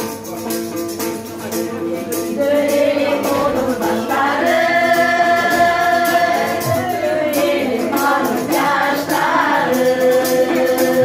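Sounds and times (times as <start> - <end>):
women singing a long note: 2.2 - 11.0.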